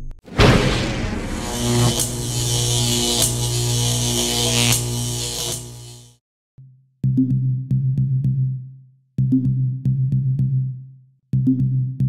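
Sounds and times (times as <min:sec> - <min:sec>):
low buzzing hum: 0:00.3 - 0:06.2
bright hiss: 0:00.4 - 0:06.1.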